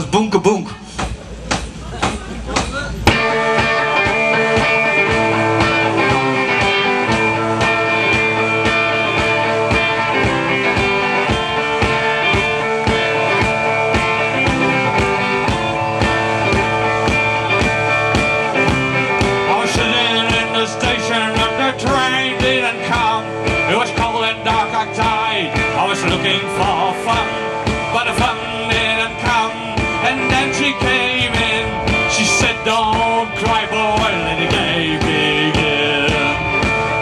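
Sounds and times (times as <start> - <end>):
drums: 0.0 - 37.0
electric guitars: 2.9 - 37.0.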